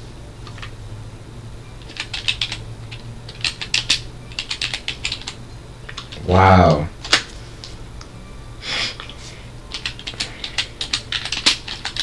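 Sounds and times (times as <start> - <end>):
low steady hum: 0.0 - 12.0
keyboard typing clicks: 1.8 - 6.2, 9.7 - 12.0.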